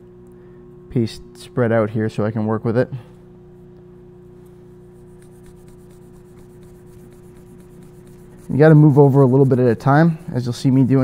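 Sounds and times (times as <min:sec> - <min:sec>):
steady low hum: 0:00.0 - 0:11.0
abrasive pad scrubbing metal: 0:04.9 - 0:11.0.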